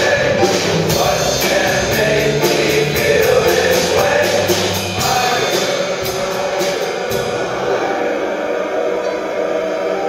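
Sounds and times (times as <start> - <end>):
choir singing: 0.0 - 10.0
piano: 0.0 - 10.0.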